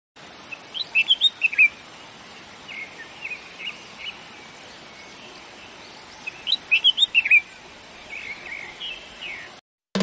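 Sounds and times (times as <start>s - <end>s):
small birds chirping: 0.2s - 9.6s
steady outdoor hiss: 0.2s - 10.0s.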